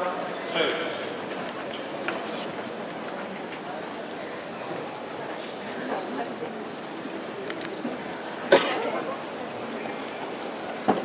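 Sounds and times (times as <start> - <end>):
murmur of indoor crowd: 0.0 - 11.0
loud cough: 8.5 - 8.9.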